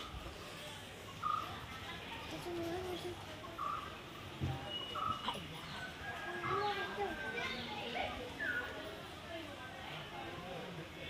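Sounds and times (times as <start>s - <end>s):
people talking and calling: 0.0s - 11.0s.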